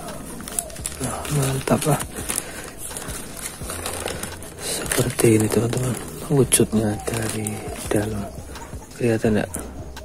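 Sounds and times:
plastic bag rustling: 0.0s - 9.5s.

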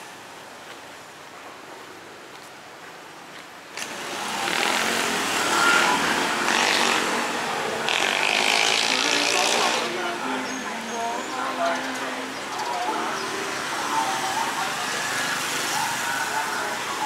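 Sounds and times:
vehicles passing close by: 3.7s - 17.0s.

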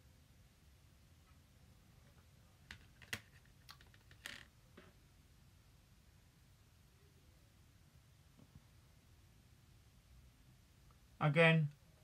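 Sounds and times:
small objects clicking: 2.7s - 4.5s.

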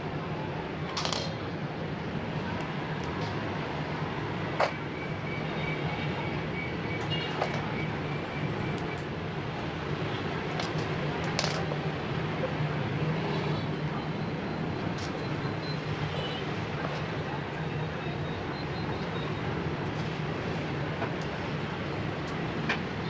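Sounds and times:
plastic bricks clicking: 0.9s - 1.4s, 10.6s - 11.7s.

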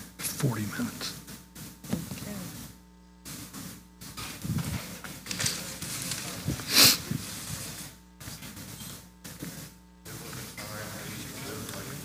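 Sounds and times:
murmur of people talking: 5.3s - 7.2s.

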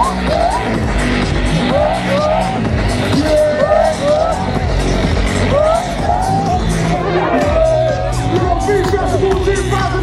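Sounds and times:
loud live music: 0.0s - 10.0s.

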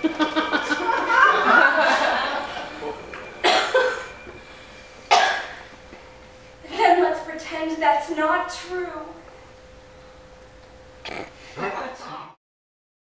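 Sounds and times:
person laughing: 0.0s - 2.8s.

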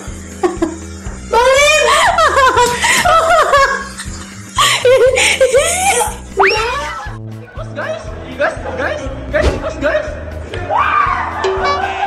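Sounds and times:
background music: 0.0s - 12.0s
high-pitched laughing: 0.4s - 7.0s.

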